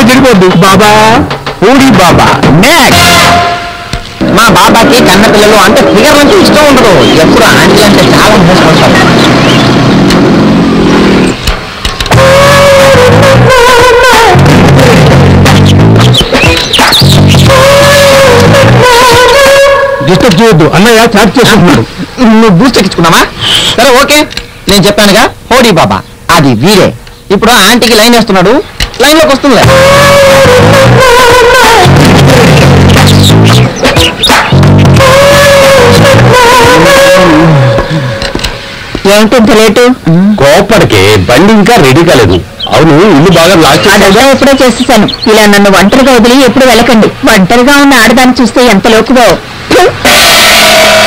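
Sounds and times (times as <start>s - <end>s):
man speaking loudly: 0.0s - 3.6s, 4.2s - 9.1s, 12.1s - 38.3s, 39.0s - 51.0s
background noise: 0.0s - 51.0s
long held note: 2.9s - 4.8s, 17.5s - 20.2s, 34.8s - 38.7s
low bass line: 12.1s - 16.2s, 17.0s - 18.9s, 29.6s - 33.8s, 34.4s - 38.2s.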